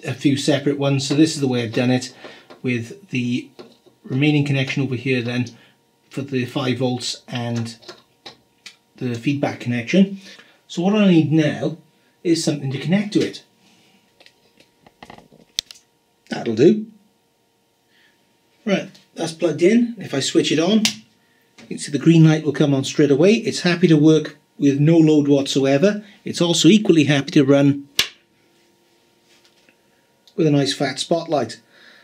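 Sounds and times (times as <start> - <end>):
faint steady hum: 0.0 - 32.0.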